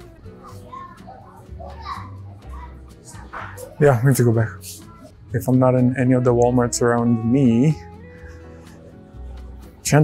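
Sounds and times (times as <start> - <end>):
soft background music: 0.0 - 10.0
child's voice: 0.3 - 3.8.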